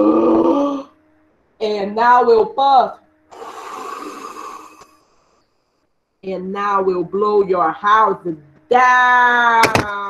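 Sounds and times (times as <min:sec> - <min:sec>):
woman blowing a long puff: 0:03.3 - 0:05.2.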